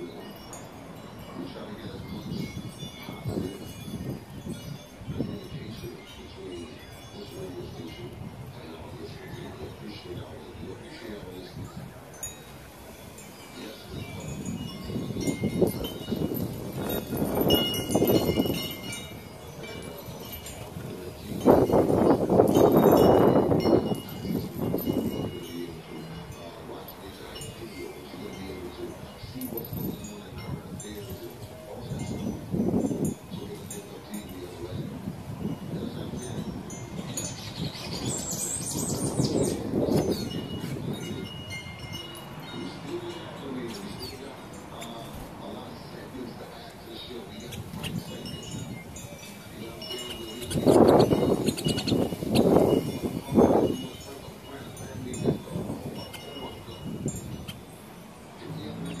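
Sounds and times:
glass wind chimes tinkling: 0:00.0 - 0:59.0.

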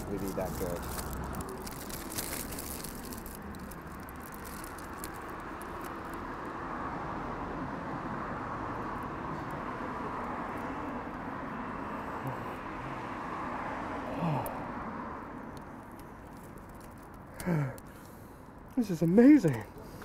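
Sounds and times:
foil wrapper crinkling: 0:00.0 - 0:06.2
street traffic rush: 0:00.0 - 0:20.0.

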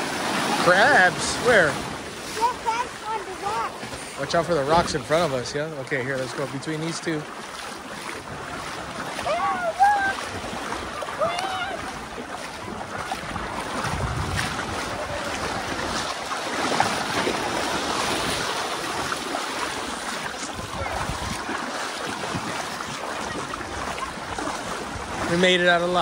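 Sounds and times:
small waves sloshing on rocks: 0:00.0 - 0:26.0
wind on microphone: 0:08.1 - 0:25.4.

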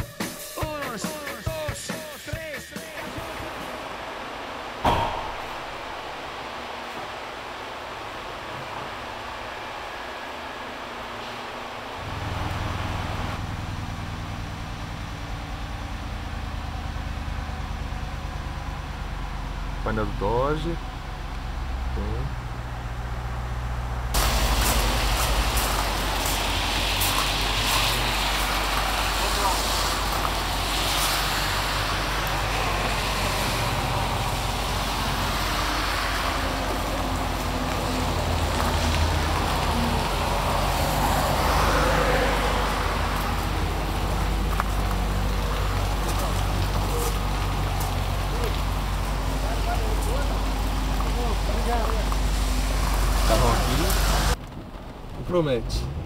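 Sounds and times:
car engine idling: 0:00.0 - 0:56.0
continuous hiss: 0:00.0 - 0:56.0.

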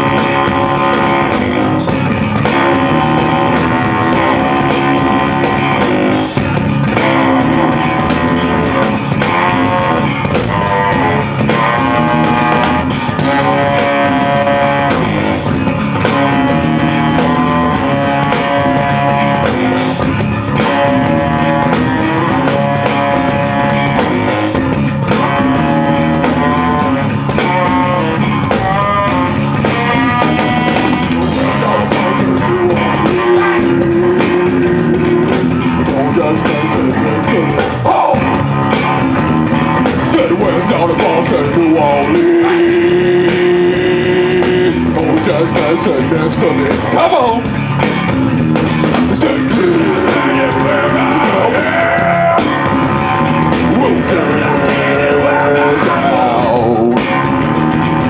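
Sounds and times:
saxophone melody: 0:00.0 - 0:48.3, 0:48.9 - 0:58.0
drum kit: 0:00.0 - 0:58.0
electric bass guitars: 0:00.0 - 0:58.0.

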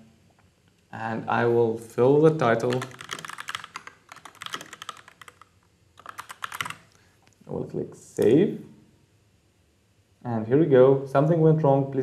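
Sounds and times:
computer keyboard typing: 0:02.2 - 0:07.0.

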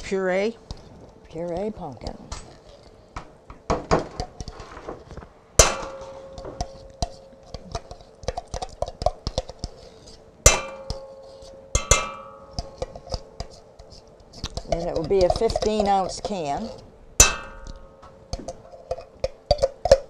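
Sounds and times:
metal utensil scraping tin can: 0:12.6 - 0:16.8.

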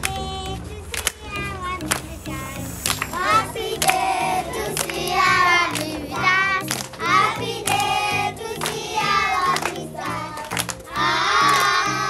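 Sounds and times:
children singing together: 0:00.0 - 0:12.0
hand claps: 0:00.0 - 0:12.0
low bass notes: 0:00.0 - 0:12.0.

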